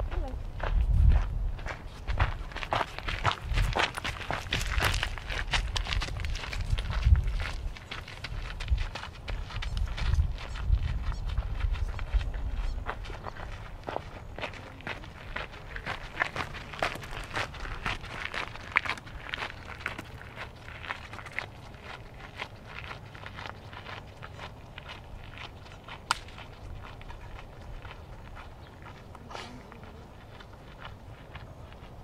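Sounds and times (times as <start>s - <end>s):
footsteps on gravel: 0.0s - 32.0s.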